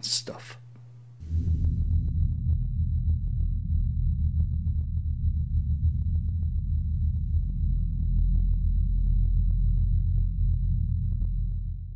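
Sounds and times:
deep low drone: 1.2 - 11.9.

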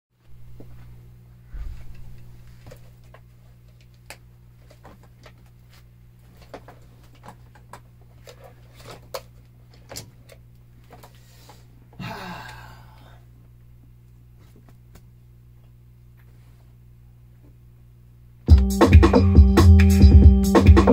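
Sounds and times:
electrical mains hum: 0.2 - 20.9.

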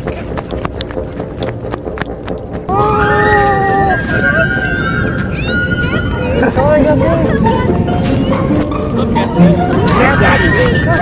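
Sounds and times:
running footsteps on sand: 0.0 - 8.8.

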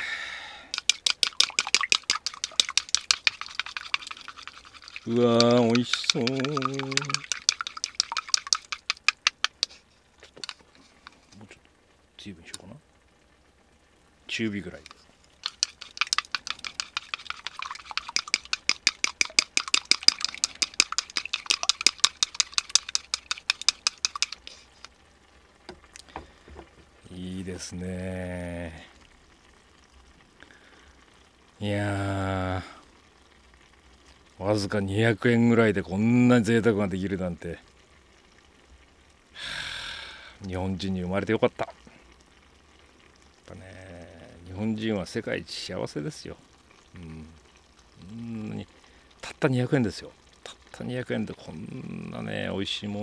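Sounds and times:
chopsticks clicking against bowl: 0.7 - 10.6, 14.8 - 24.9.

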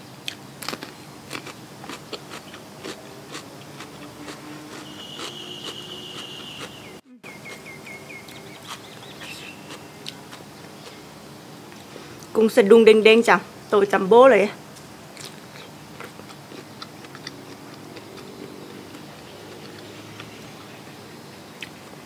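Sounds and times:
crunching bites into cucumber: 0.6 - 6.8
chewing: 0.6 - 11.0, 15.2 - 20.7
high steady trill: 3.0 - 7.7.

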